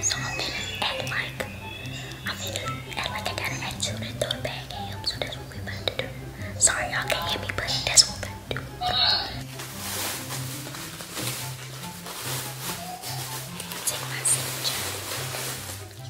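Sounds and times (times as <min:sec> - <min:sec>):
woman whispering: 0:00.0 - 0:09.4, 0:13.8 - 0:14.9
background music with bass line: 0:00.0 - 0:13.7.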